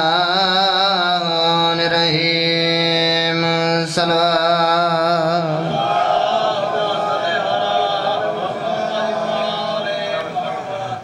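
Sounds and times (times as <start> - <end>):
man chanting into microphone: 0.0 - 5.9, 6.6 - 11.0.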